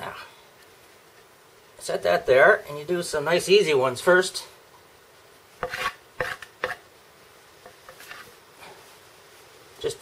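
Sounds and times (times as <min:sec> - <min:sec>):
wooden board scraping on board: 0:05.6 - 0:06.8, 0:07.6 - 0:08.3.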